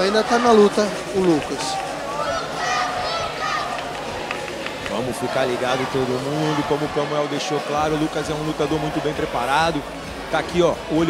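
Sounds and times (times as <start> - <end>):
crowd noise: 0.0 - 11.0
indistinct voices: 0.0 - 11.0.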